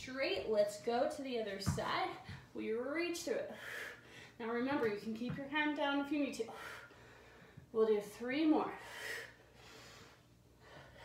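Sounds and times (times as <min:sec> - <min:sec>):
quiet breathing: 0:06.5 - 0:07.7, 0:08.8 - 0:11.0.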